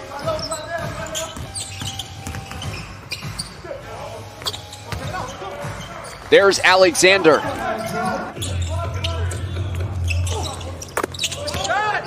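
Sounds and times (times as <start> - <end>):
basketball bouncing on hardwood: 0.2 - 3.5
players calling out: 0.2 - 12.0.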